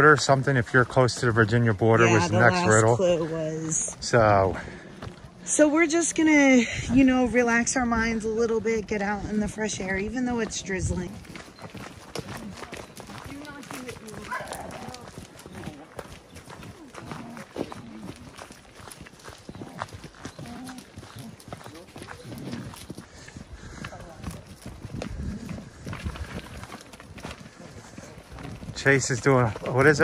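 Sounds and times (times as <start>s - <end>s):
footsteps on dirt and leaves: 0.0s - 30.0s.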